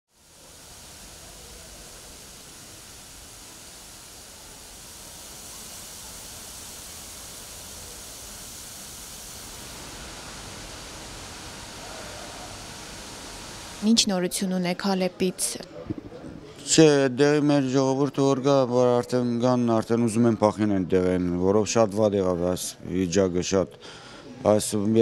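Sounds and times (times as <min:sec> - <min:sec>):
background ambience hiss: 0:00.1 - 0:25.0.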